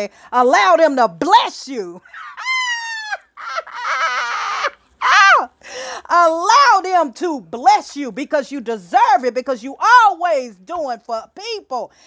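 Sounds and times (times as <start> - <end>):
woman laughing breathily: 2.0 - 4.8
woman squealing: 2.0 - 5.6
woman's high exclamation: 2.1 - 5.5.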